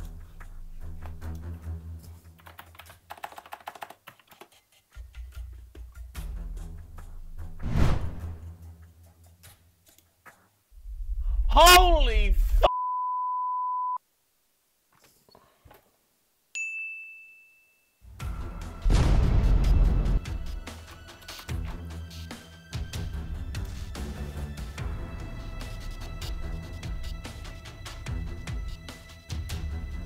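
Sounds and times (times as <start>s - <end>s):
computer keyboard typing: 2.3s - 5.3s
bright bell-like ding: 16.6s - 17.8s.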